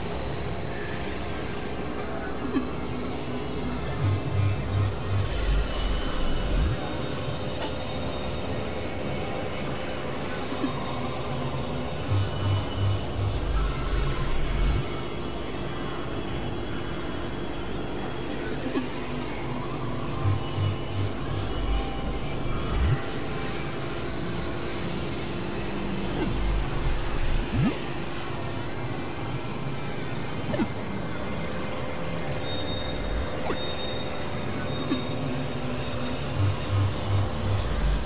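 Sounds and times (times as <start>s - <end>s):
noisy synthesizer drone: 0.0s - 38.0s
low synth pulses: 3.9s - 7.0s, 12.1s - 15.0s, 20.0s - 23.2s, 26.0s - 27.9s, 36.3s - 38.0s
wavering high tones: 19.8s - 24.5s, 26.0s - 28.0s, 32.1s - 38.0s.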